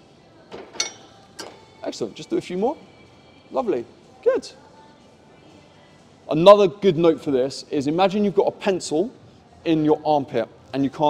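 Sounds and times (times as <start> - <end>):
metal weight stack clink: 0.8 - 1.6.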